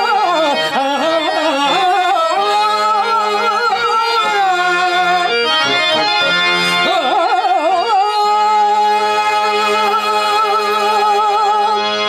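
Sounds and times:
low harmonium note: 0:00.0 - 0:12.0.

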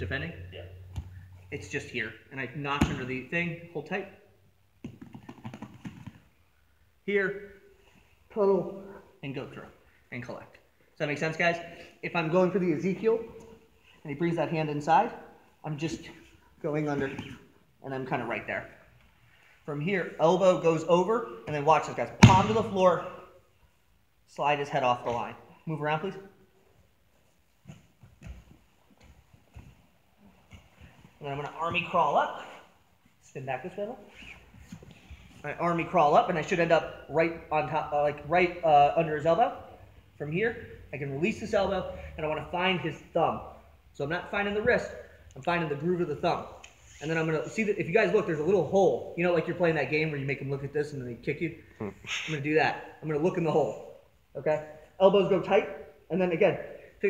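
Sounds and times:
faint rustling: 0:26.4 - 0:35.8.

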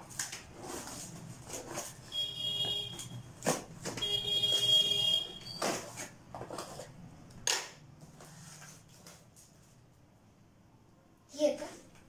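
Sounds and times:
tape and cardboard rasps: 0:00.0 - 0:09.7.

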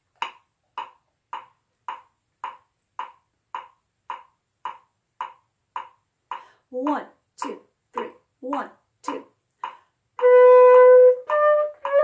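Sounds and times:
metronome ticking: 0:00.0 - 0:12.0.

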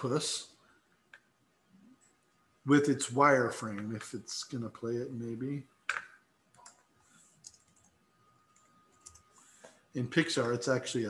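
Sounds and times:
keyboard and mouse clicks: 0:05.9 - 0:09.3.

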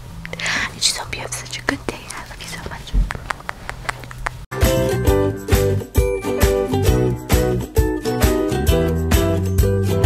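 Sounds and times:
steady low hum: 0:00.0 - 0:04.5
person whispering: 0:00.3 - 0:03.8
background music with jingling: 0:04.6 - 0:10.0.

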